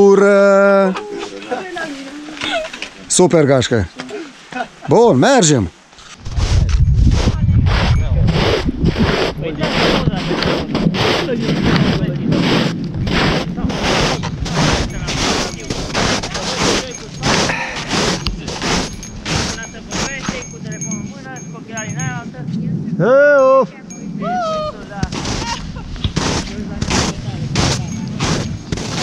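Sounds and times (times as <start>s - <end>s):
footsteps crunching through snow: 5.9s - 22.2s, 24.8s - 29.0s
wind rumbling on microphone: 6.0s - 29.0s.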